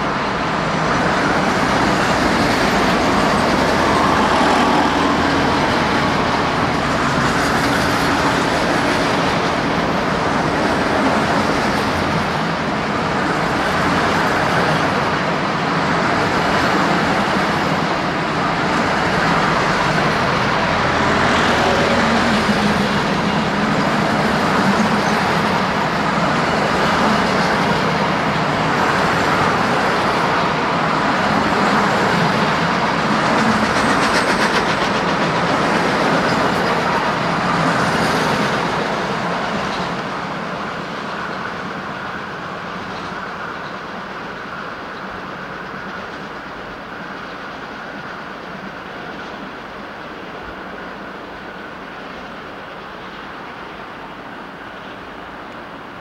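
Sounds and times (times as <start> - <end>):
train wheels rumbling and rattling: 0.0 - 56.0.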